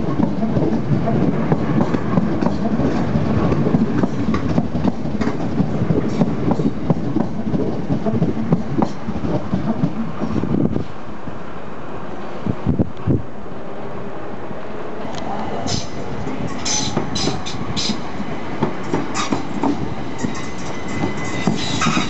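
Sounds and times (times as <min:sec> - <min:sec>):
wheels clicking over rail joints: 0:00.0 - 0:10.4
electric train rumble: 0:00.0 - 0:22.0.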